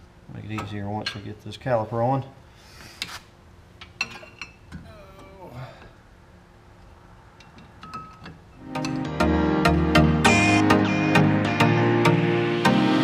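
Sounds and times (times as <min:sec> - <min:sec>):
loud music: 0:08.6 - 0:13.0.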